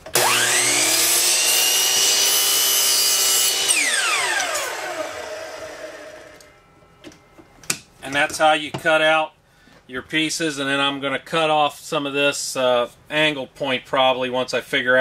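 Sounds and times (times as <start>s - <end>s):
miter saw cutting wood: 0.0s - 6.6s.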